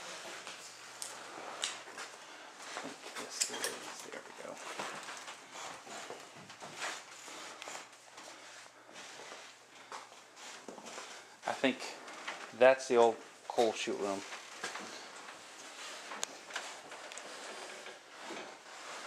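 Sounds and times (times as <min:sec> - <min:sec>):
scrapes: 0:02.7 - 0:19.0.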